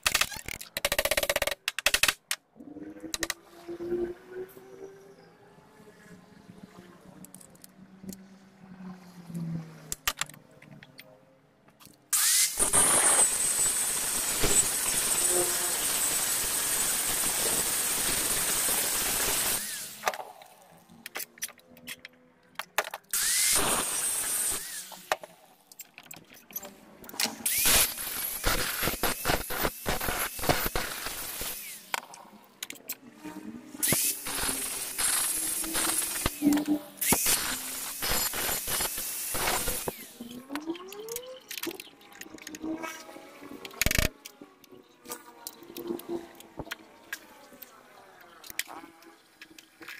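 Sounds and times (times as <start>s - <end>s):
angle grinder running: 12.2s - 20.0s, 23.2s - 25.1s, 27.5s - 32.0s, 33.8s - 40.2s.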